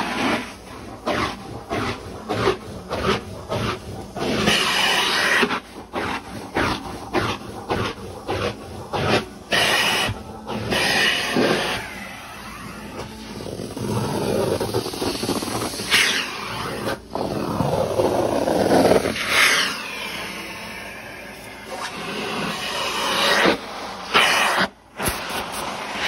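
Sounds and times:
vacuum suction on carpet: 0.0 - 26.0.

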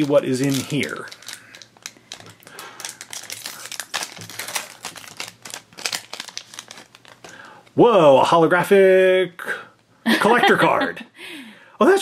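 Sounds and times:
foil wrapper crinkling: 0.0 - 7.6.

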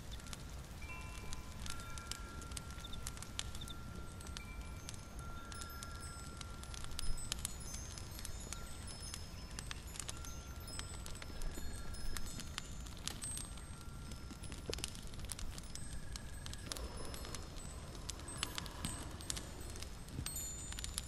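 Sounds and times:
tinkling chime-like notes: 0.0 - 21.0
small clicks: 0.1 - 21.0.

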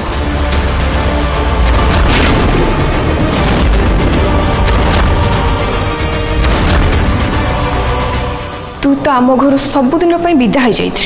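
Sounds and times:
dramatic background score: 0.0 - 11.0
deep heavy booms: 1.6 - 7.6
sharp hit: 1.7 - 7.4.

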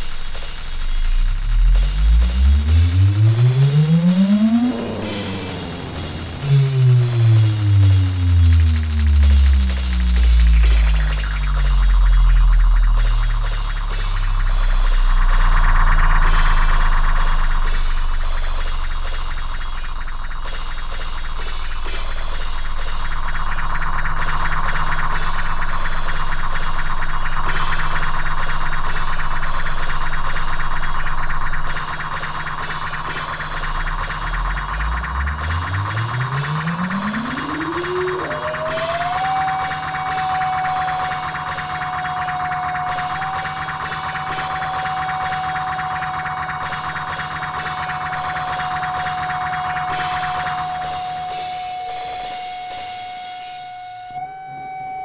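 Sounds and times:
pulsing hiss: 0.0 - 54.1
low synthesizer drone: 0.0 - 55.0
tone gliding upward: 2.0 - 12.2, 34.2 - 46.8.

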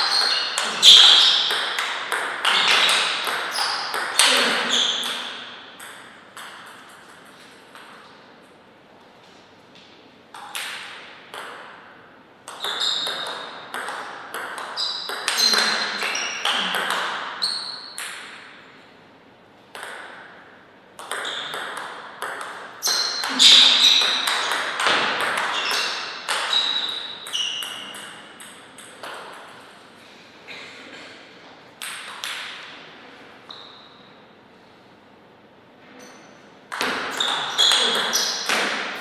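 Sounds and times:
table tennis ball clicking off paddles: 0.0 - 4.3, 12.4 - 17.2, 21.0 - 29.6
ball bouncing on table: 0.0 - 8.0, 10.3 - 11.8, 12.5 - 18.5, 19.7 - 20.4, 21.0 - 29.6, 31.8 - 32.7, 36.7 - 39.0.

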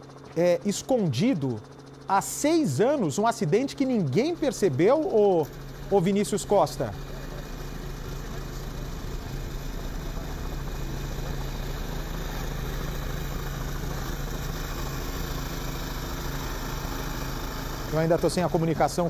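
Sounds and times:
motor running: 0.0 - 19.0.

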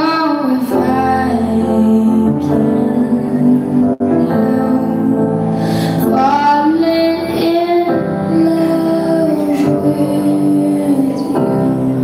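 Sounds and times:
slow love song: 0.0 - 12.0.

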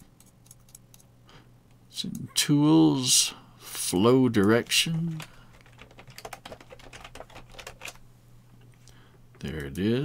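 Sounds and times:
computer keyboard typing: 0.0 - 1.1, 4.4 - 8.0.

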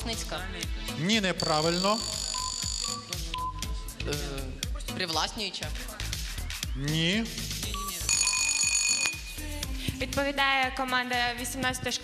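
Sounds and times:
high steady electronic tone: 1.3 - 3.8
short beeps: 1.4 - 3.8, 7.7 - 9.4.

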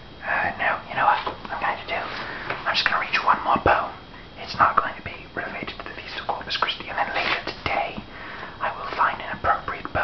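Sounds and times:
man whispering: 0.2 - 10.0.

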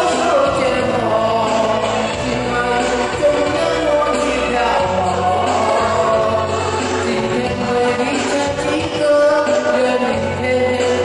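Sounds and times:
man singing into a microphone: 0.0 - 11.0
recorded backing track: 0.0 - 11.0.

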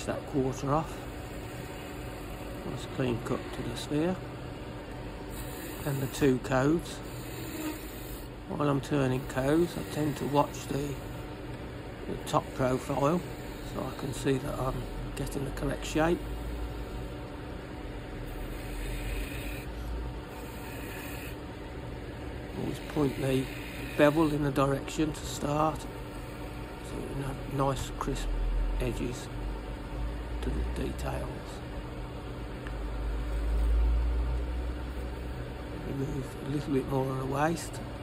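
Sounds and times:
wood lathe humming: 0.0 - 4.3, 4.9 - 29.3
gouge shaving spinning wood: 5.3 - 11.1, 12.1 - 16.6, 18.3 - 19.7, 20.3 - 21.4, 22.5 - 25.7.

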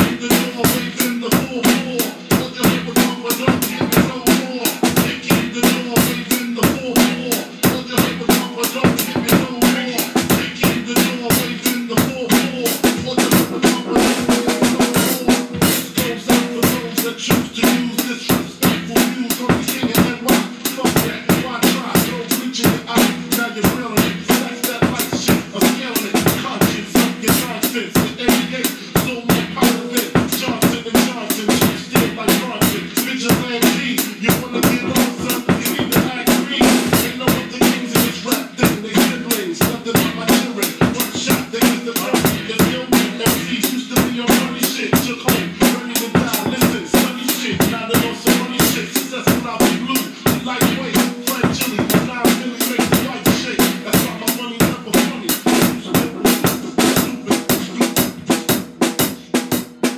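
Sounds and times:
acoustic drum kit groove: 0.0 - 59.9.

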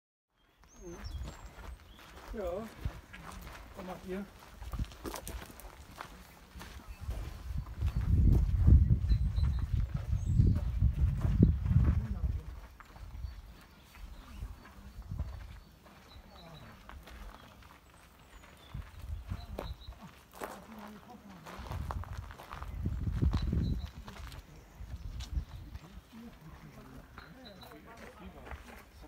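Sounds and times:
footsteps outdoors: 0.3 - 29.0.

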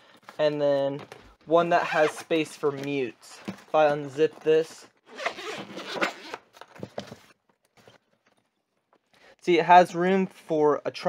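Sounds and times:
zipper being pulled open: 5.1 - 6.5.

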